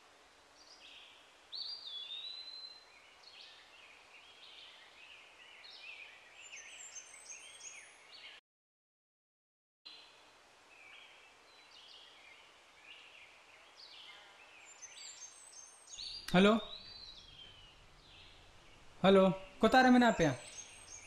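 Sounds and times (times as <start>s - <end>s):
birds chirping: 0.8s - 8.4s, 10.8s - 21.0s.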